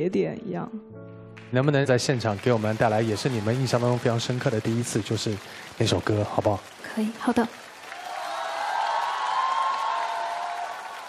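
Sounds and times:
audience applauding: 1.4 - 11.0
cheering: 2.4 - 6.6, 7.3 - 11.0.

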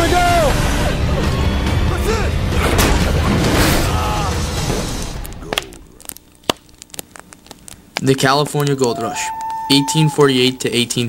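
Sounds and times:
dramatic soundtrack music: 0.0 - 5.4.

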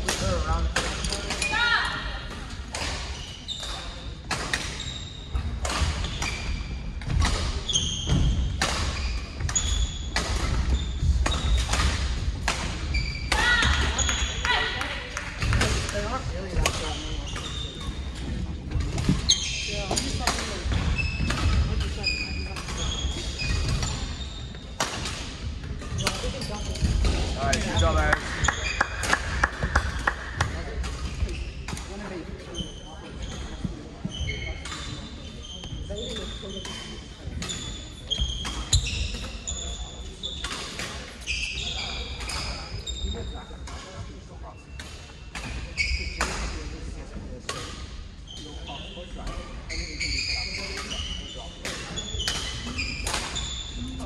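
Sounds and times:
shoes squeaking on wooden floor: 2.8 - 12.0, 12.7 - 14.7, 15.9 - 24.8, 31.1 - 44.8, 45.6 - 46.2, 48.2 - 54.0
racket hitting shuttlecock: 50.8 - 53.4.

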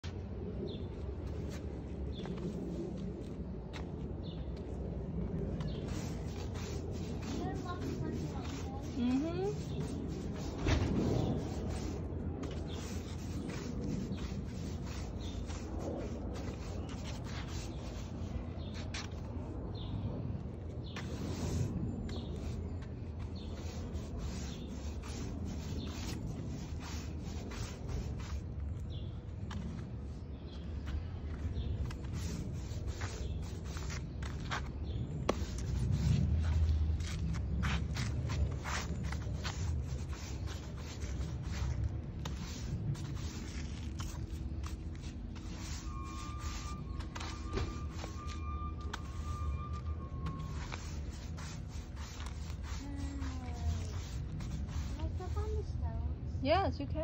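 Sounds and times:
push broom scraping concrete: 5.6 - 18.8, 20.9 - 22.6, 23.2 - 29.0, 31.6 - 55.7.

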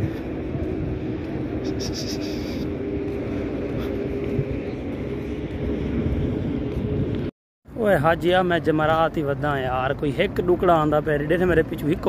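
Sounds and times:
bus engines running: 0.0 - 12.0
traffic rumble: 0.0 - 12.0.

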